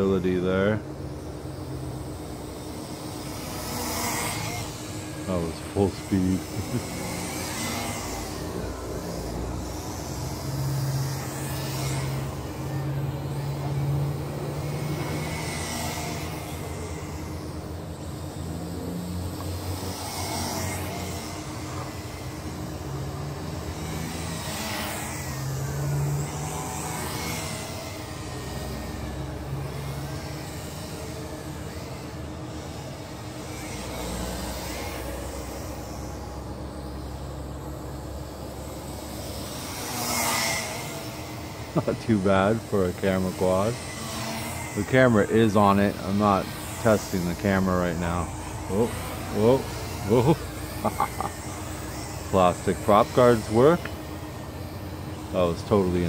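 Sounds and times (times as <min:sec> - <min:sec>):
drone propellers whirring: 0:00.0 - 0:56.0.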